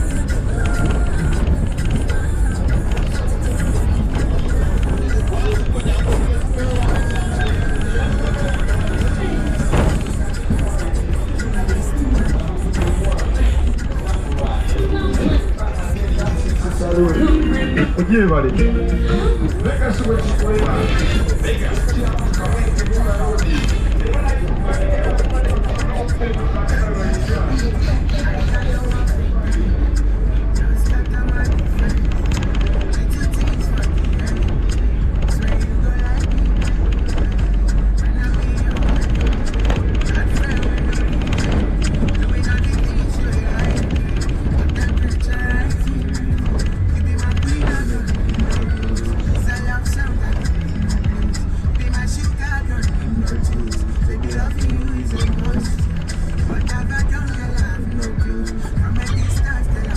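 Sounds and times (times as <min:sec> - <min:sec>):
car rumbling on dirt road: 0:00.0 - 0:59.9
music with vocals: 0:00.0 - 0:59.9.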